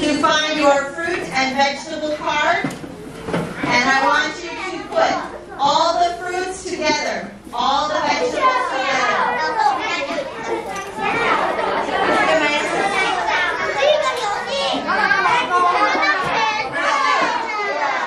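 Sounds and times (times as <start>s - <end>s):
children chattering: 0.0s - 18.0s.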